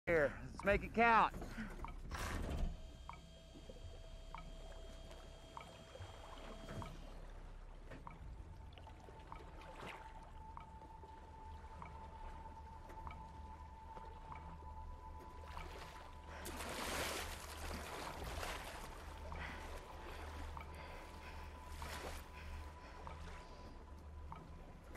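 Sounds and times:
faint water sounds: 0.1 - 24.9
held tones of film score: 0.1 - 24.9.

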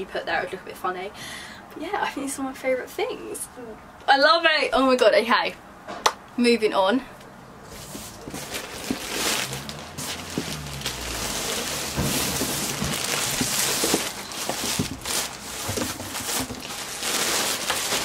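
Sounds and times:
packaging rustling and crinkling: 7.7 - 18.0.

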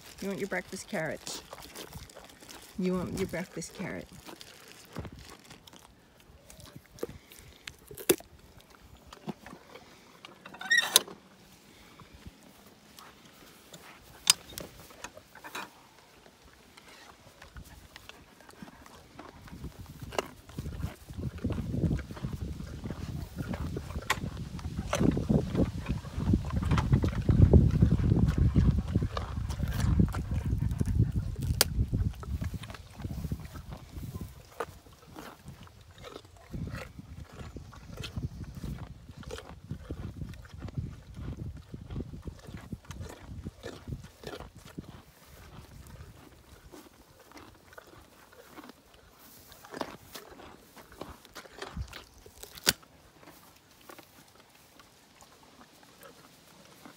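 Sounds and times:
horse breathing: 0.0 - 52.6.

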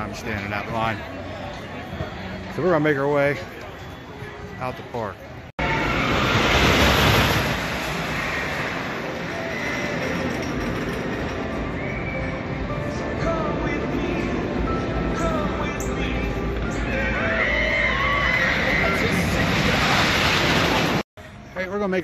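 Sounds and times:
roller coaster train rumbling: 5.6 - 15.6, 16.8 - 21.0.

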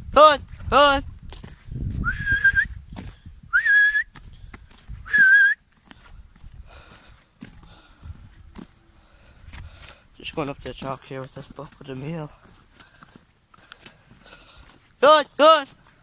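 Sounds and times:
person whistling: 2.0 - 2.8, 3.5 - 4.2, 5.0 - 5.6.

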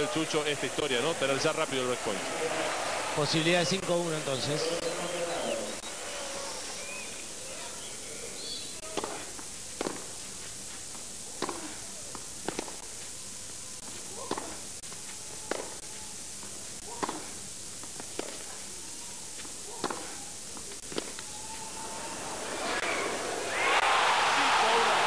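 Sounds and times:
steady hiss: 0.0 - 25.0
tennis ball hit by rackets: 8.8 - 10.1, 11.3 - 12.8, 14.1 - 14.6, 15.4 - 15.8, 16.8 - 18.5, 19.4 - 20.2, 20.8 - 21.3.

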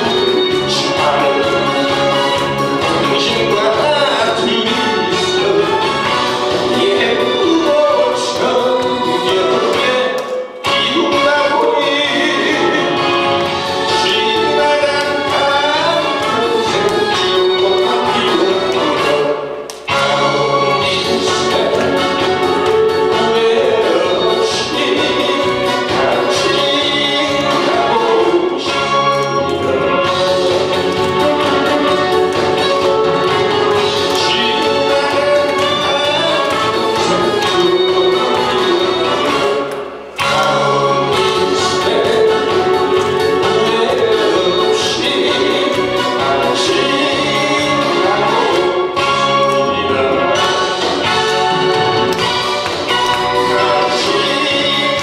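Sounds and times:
man singing into microphone: 0.0 - 52.4, 53.3 - 55.0
recorded music over pa: 0.0 - 55.0.

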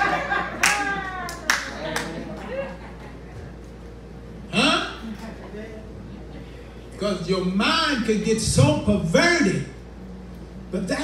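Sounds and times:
hand claps: 0.6 - 2.6.

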